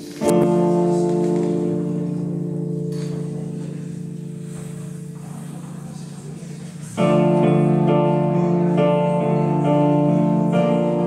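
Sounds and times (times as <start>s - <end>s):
digital piano chord: 0.0s - 11.0s.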